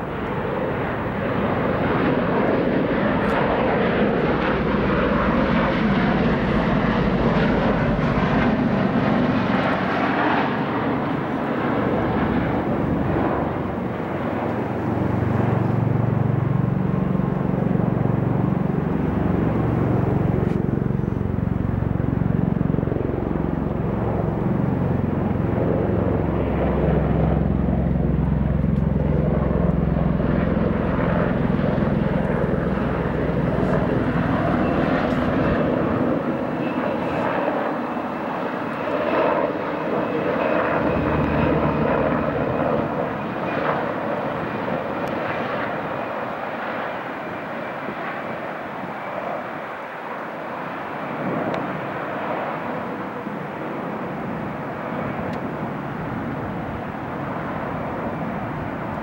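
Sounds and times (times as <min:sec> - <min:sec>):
helicopter rotor and turbine drone: 0:00.0 - 0:59.0.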